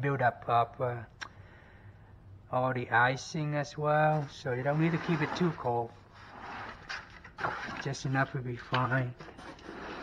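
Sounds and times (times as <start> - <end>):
rustling and scraping of foam packing: 4.1 - 10.0.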